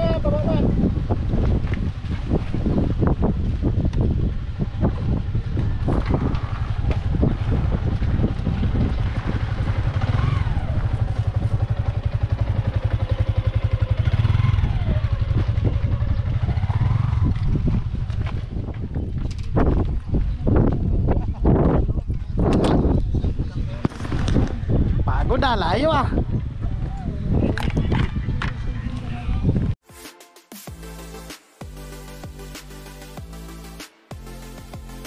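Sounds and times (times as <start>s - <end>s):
small motorcycle engine running: 1.5s - 18.8s.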